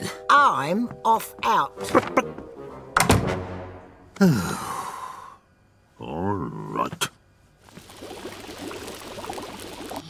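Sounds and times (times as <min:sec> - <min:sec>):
pot boiling with dense bubbling: 0:07.6 - 0:10.0.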